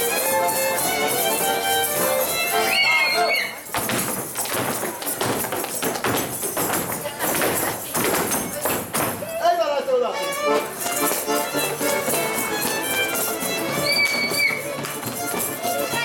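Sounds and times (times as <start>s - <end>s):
fiddle-led folk band music: 0.0s - 3.7s, 9.9s - 16.0s
feet stamping a rhythm: 0.0s - 9.4s, 10.2s - 16.0s
high shouted whoop: 2.7s - 3.6s.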